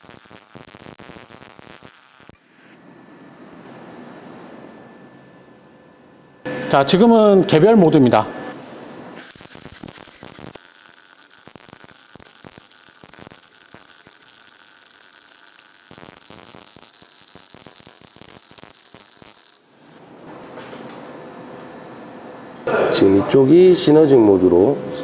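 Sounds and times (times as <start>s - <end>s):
welding arc crackling: 0.0s - 2.4s, 9.2s - 20.0s.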